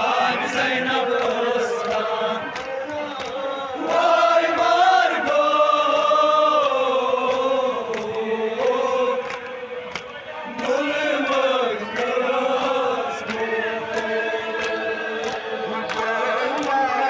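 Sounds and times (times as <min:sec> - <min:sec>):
man leading chant on microphone: 0:00.0 - 0:05.4, 0:08.2 - 0:17.0
men chanting a lament: 0:00.0 - 0:17.0.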